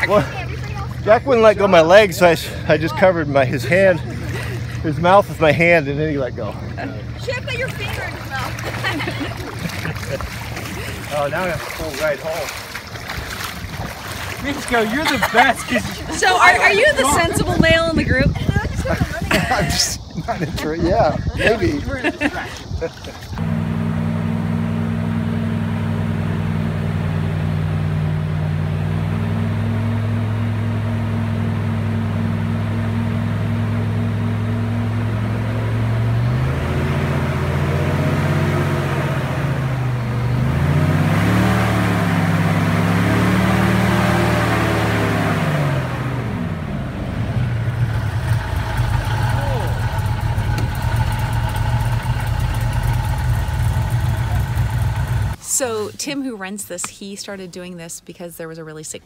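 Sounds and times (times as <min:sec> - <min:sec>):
airboat engine and propeller revving: 0:00.0 - 0:55.8.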